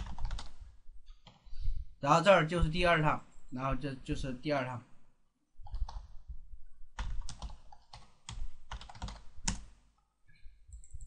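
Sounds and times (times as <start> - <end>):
computer keyboard typing: 0.0 - 0.6, 5.6 - 6.2, 7.0 - 9.7, 10.7 - 11.0.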